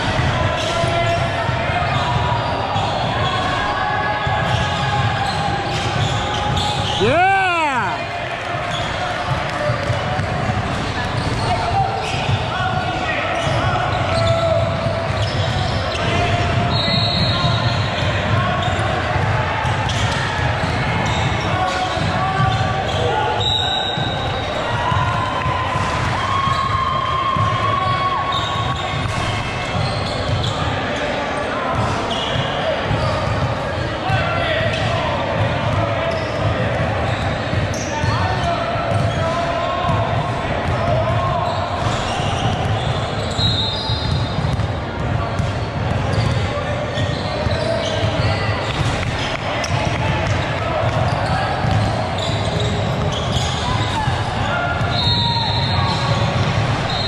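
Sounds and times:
people talking and calling out: 0:00.0 - 0:57.0
referee's whistle blasts: 0:16.7 - 0:17.9, 0:22.9 - 0:24.4, 0:41.4 - 0:44.4, 0:54.8 - 0:56.2
basketball bouncing: 0:44.0 - 0:47.2.

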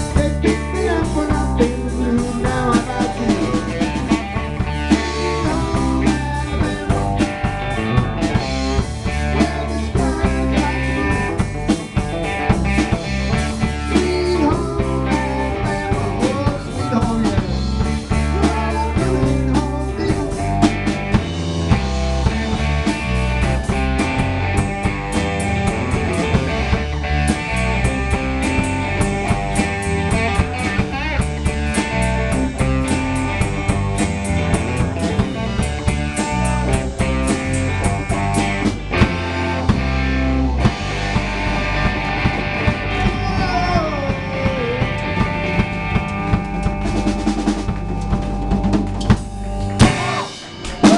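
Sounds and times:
drum kit steady beat: 0:00.0 - 0:50.9
electric bass: 0:00.0 - 0:50.9
electric guitars: 0:00.0 - 0:50.9.

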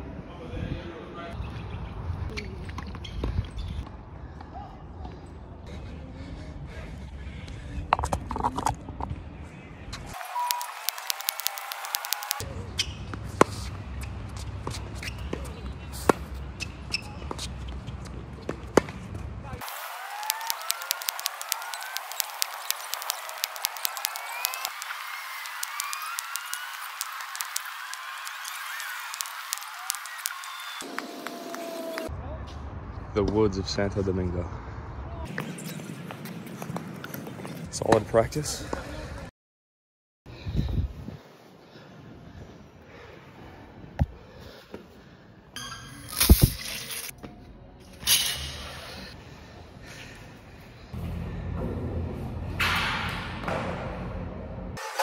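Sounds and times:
tennis balls struck by rackets: 0:18.5 - 0:31.4
birds chirping: 0:20.3 - 0:32.1.

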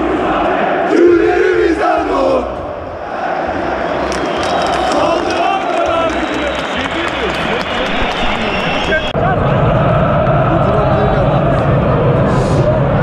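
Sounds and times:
crowd shouting and chanting: 0:00.0 - 0:13.0.

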